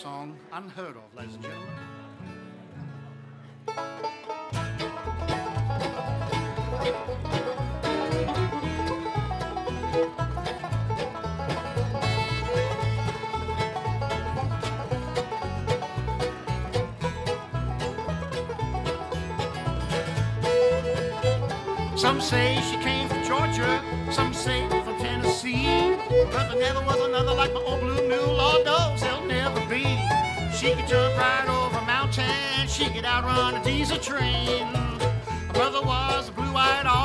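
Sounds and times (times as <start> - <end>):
bluegrass band playing: 0.0 - 37.0.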